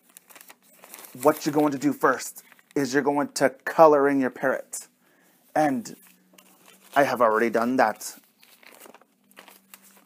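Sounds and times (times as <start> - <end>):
paper rustling: 0.0 - 2.8, 5.8 - 10.0.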